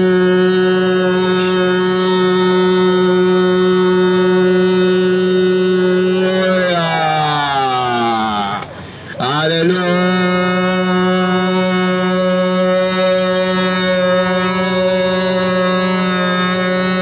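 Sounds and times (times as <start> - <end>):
man singing through loudspeaker: 0.0 - 17.0.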